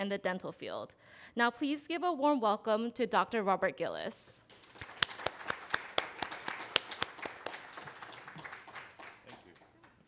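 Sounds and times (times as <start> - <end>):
audience applause: 4.5 - 10.0
loud sharp hand claps: 4.5 - 10.0.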